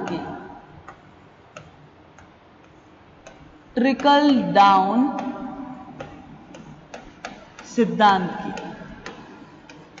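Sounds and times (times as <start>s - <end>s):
stylus tapping on surface: 0.0s - 4.4s, 5.1s - 10.0s.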